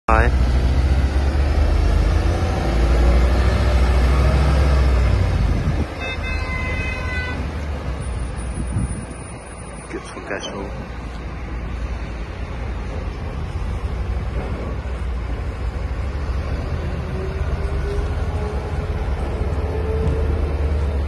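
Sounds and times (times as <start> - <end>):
crane diesel engine droning: 0.1 - 21.0.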